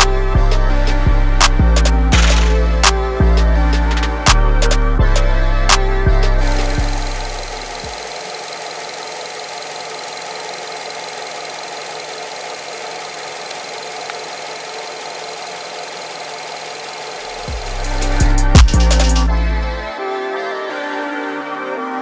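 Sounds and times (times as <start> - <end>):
background music: 0.0 - 8.0, 17.4 - 22.0
car engine idling: 5.9 - 19.8.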